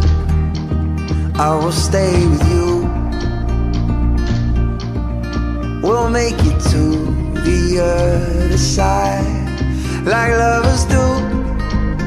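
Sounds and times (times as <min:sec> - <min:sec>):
guitar strumming: 0:00.0 - 0:12.0
steady bass: 0:00.0 - 0:12.0.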